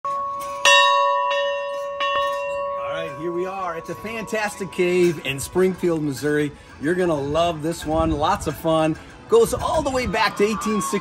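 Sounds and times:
bell ringing: 0:00.0 - 0:07.2.

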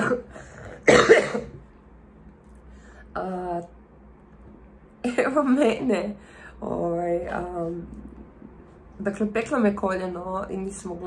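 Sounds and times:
woman coughing: 0:00.0 - 0:01.6.

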